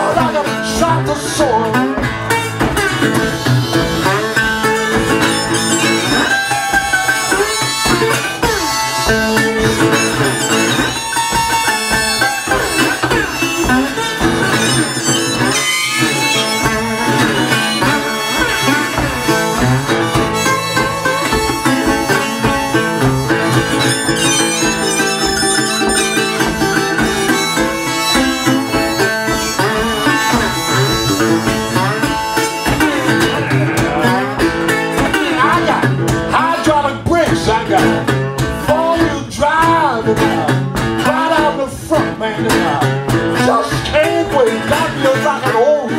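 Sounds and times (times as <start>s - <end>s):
harmonica wailing: 0.0s - 36.7s
strummed resonator guitar: 0.0s - 45.9s.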